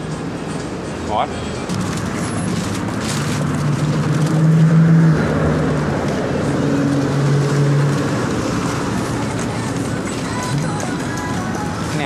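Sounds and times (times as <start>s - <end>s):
street traffic: 0.0s - 12.0s
vehicle engine droning: 0.0s - 12.0s.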